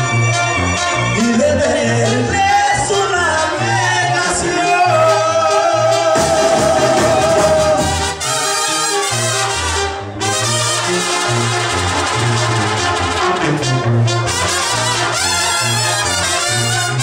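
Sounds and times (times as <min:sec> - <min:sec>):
trumpets and trombones: 0:00.0 - 0:17.0
tuba bass line: 0:00.0 - 0:17.0.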